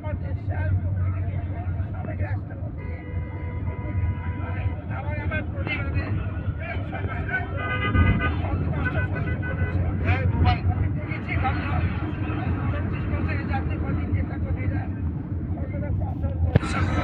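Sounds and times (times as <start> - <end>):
murmur of voices: 0.0 - 17.0
person talking close to microphone: 8.3 - 17.0.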